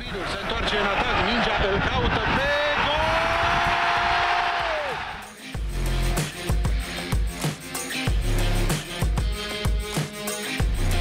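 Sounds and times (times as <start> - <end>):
stadium crowd noise: 0.0 - 5.2
music with heavy bass beat: 5.3 - 11.0.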